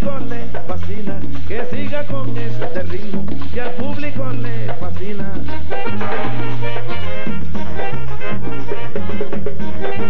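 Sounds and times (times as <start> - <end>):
bass line: 0.0 - 10.0
percussion beat: 0.0 - 10.0
trombones playing melody: 5.5 - 10.0.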